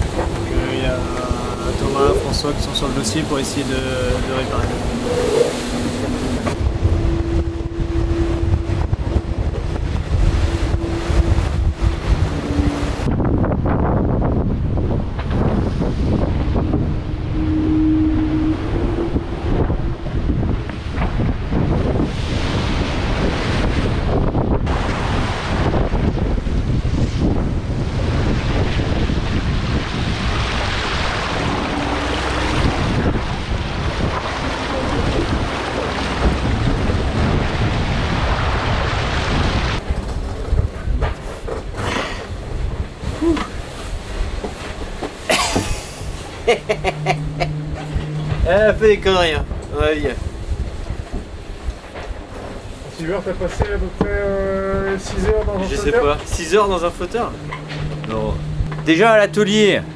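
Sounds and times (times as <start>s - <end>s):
sea water rushing and splashing: 0.0s - 59.9s
wind buffeting microphone: 0.0s - 59.9s.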